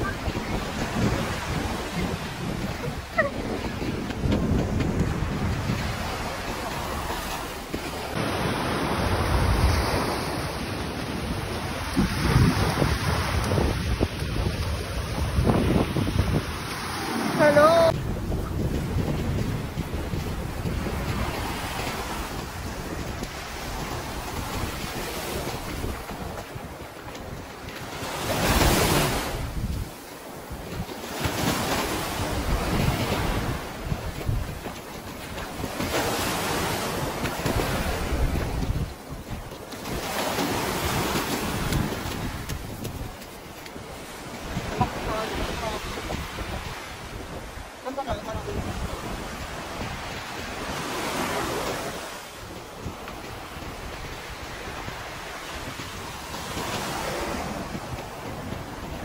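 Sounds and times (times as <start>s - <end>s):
sea waves washing on beach: 0.0s - 59.0s
wind buffeting microphone: 0.0s - 59.0s.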